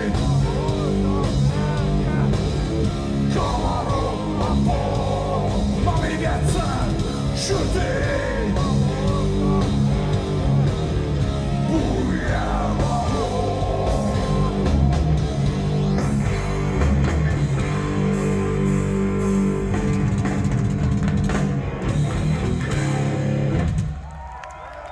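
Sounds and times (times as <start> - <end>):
distorted electric guitars: 0.0 - 24.0
drum kit: 0.0 - 24.3.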